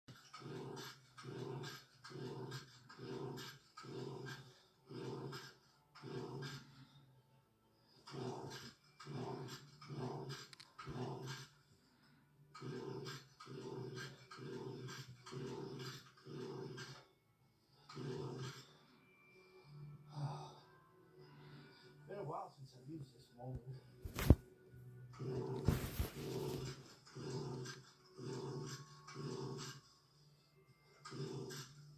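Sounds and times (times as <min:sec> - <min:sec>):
heavy breathing: 0:25.5 - 0:29.8.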